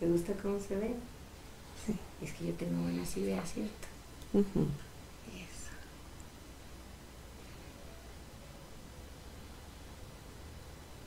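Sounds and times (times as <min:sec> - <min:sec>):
faint whisper: 0:01.8 - 0:06.0.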